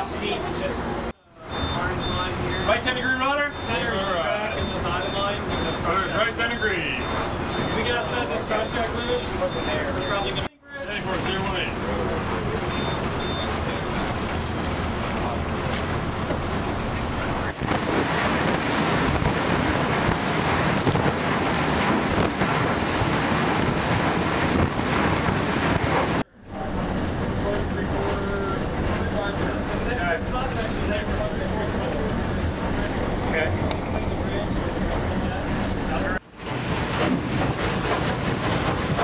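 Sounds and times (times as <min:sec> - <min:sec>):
water and ice churning along hull: 0:00.0 - 0:39.0
wind on microphone: 0:17.5 - 0:26.2.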